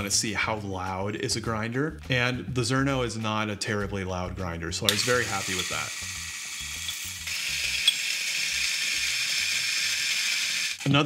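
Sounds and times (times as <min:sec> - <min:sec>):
coffee grinder grinding beans: 0:04.9 - 0:11.0.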